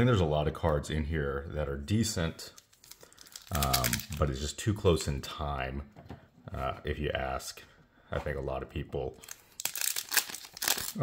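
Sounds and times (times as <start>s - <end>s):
foil wrapper tearing and crinkling: 2.6s - 4.2s, 9.2s - 11.0s.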